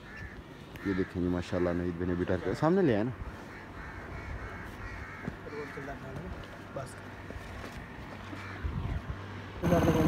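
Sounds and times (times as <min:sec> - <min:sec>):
birds calling: 0:00.0 - 0:10.0
faint outdoor background: 0:00.0 - 0:10.0.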